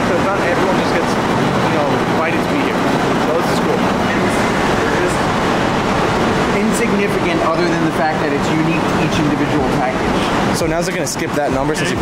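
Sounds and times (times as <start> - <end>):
conveyor rollers rumbling and rattling: 0.0 - 12.0.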